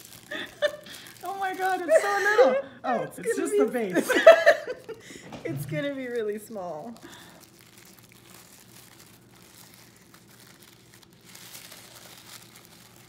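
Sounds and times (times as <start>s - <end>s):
wrapping paper rustling: 0.0s - 13.0s.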